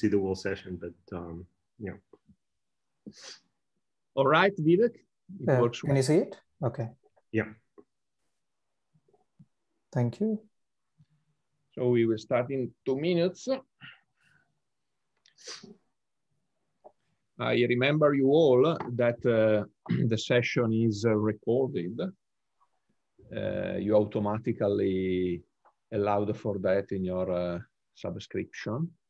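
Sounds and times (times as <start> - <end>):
person breathy hiss: 15.4 - 15.7.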